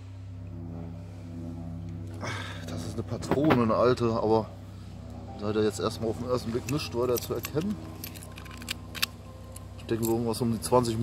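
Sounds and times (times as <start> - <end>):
steady low hum: 0.0 - 11.0
small metal objects clicking: 6.6 - 10.2.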